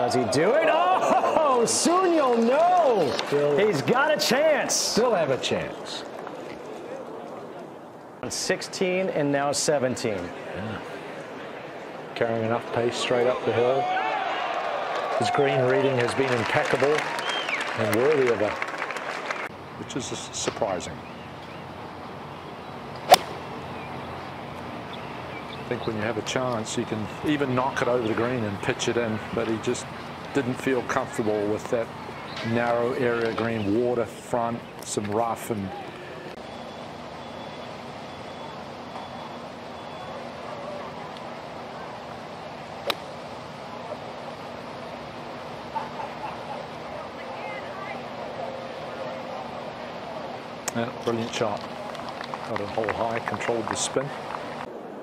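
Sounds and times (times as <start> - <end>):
faint outdoor hush: 0.0 - 18.4, 19.4 - 55.0
golf course background noise: 0.0 - 55.0
golf club striking ball: 23.0 - 23.4, 42.8 - 43.1.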